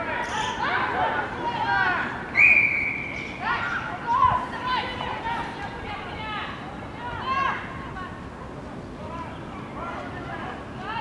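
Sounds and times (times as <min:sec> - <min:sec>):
women shouting and calling: 0:03.4 - 0:08.2.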